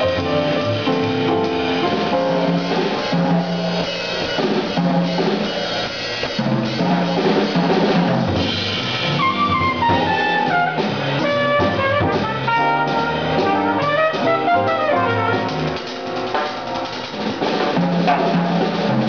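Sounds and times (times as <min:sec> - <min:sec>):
drum kit with cymbals: 0:00.0 - 0:19.0
upright bass: 0:08.2 - 0:15.8
brass horn melody: 0:09.1 - 0:16.5.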